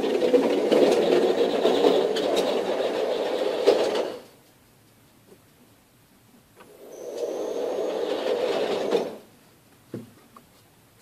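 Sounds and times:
motorized target carrier whining: 0:06.7 - 0:09.2.

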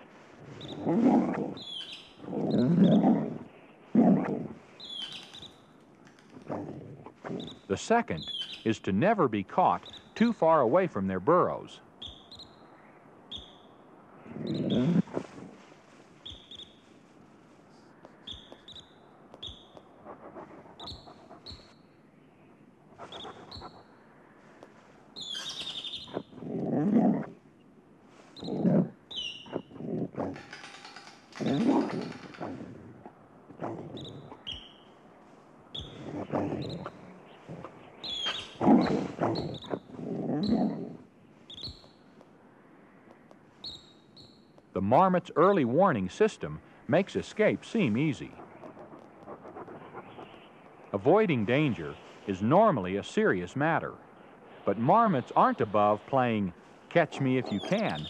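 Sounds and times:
coyote sniffing and snuffling: 0:00.0 - 0:58.0
marmot alarm whistles: 0:12.0 - 0:12.6, 0:13.3 - 0:13.7, 0:34.0 - 0:34.9.

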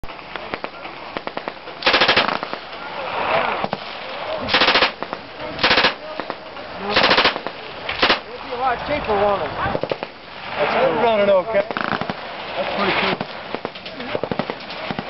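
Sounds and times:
submachine gun full-auto bursts: 0:01.2 - 0:02.6, 0:04.5 - 0:05.0, 0:05.6 - 0:06.0, 0:06.9 - 0:08.2
single sharp gunshot cracks: 0:04.5 - 0:08.2.

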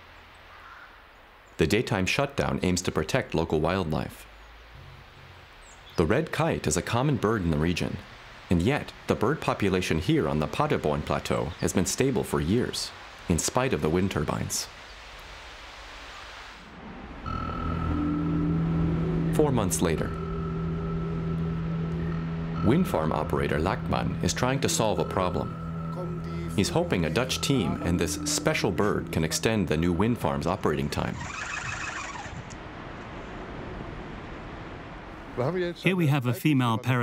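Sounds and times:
wind-like hiss: 0:00.0 - 0:01.6, 0:04.0 - 0:17.3
faint pitched sound: 0:16.7 - 0:32.4.

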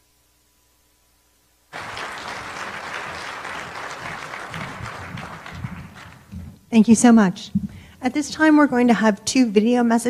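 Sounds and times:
audience applauding: 0:01.7 - 0:06.5.

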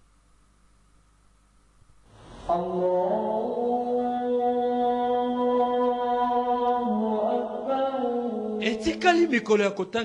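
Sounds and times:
man chanting a prayer: 0:08.2 - 0:10.0.

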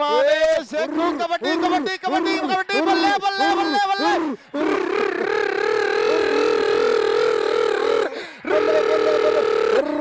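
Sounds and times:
public address commentary: 0:00.0 - 0:04.4
man shouting a long high call: 0:00.0 - 0:10.0.

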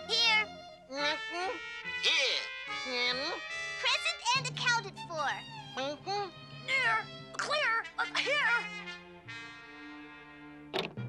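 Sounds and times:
soft background music: 0:00.0 - 0:11.0
high-pitched cartoon voices: 0:06.7 - 0:08.8.

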